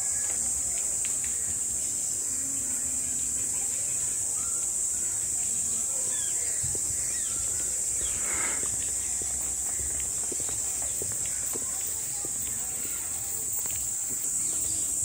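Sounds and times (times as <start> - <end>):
insects shrilling: 0.1 - 15.0
faint chirps: 1.2 - 15.0.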